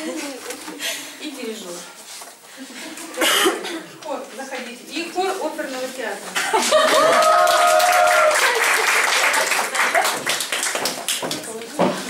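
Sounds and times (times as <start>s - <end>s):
person coughing: 3.2s - 3.9s.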